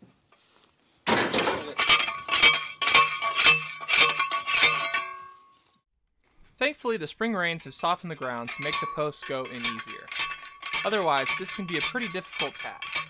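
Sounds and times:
post driver clanging on metal post: 1.2s - 5.2s, 8.2s - 13.0s.

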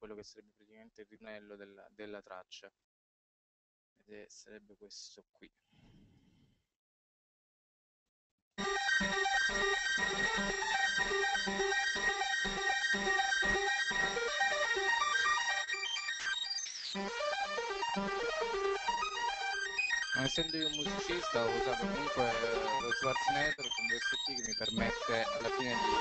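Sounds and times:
falling synth sweep: 8.6s - 26.0s
high steady tone: 8.6s - 26.0s
pulsing synthesizer riff: 8.6s - 26.0s.

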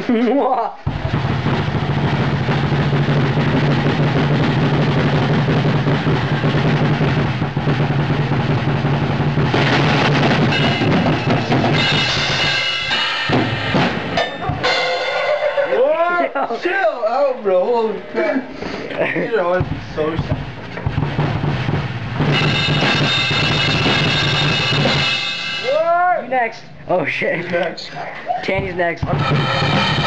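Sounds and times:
fast drum roll: 0.8s - 15.8s, 19.4s - 26.0s, 28.5s - 30.0s
cymbals crashing: 0.9s - 16.0s, 19.6s - 26.1s, 29.0s - 30.0s.

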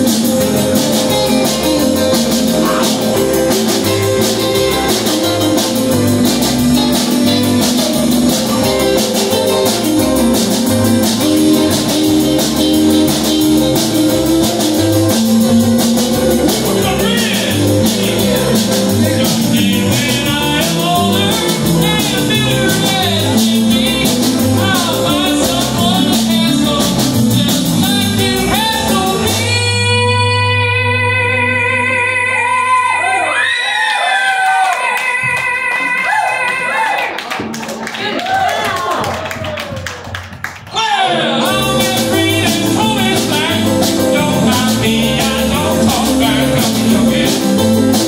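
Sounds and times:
organ: 0.0s - 29.8s, 41.1s - 48.0s
drums keeping a steady beat: 0.0s - 30.3s, 37.3s - 48.0s
steel guitar: 0.0s - 32.0s
steady bass note: 0.0s - 32.1s, 41.3s - 48.0s
electric guitar: 0.0s - 33.5s, 41.0s - 48.0s.

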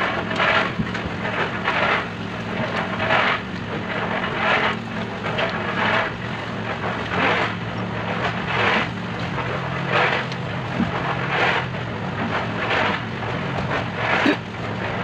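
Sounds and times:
wet concrete shovelled and dumped: 0.0s - 15.0s.

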